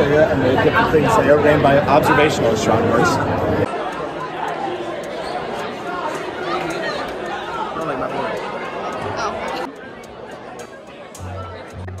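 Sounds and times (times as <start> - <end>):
crowd chatter in a large hall: 0.0 - 12.0.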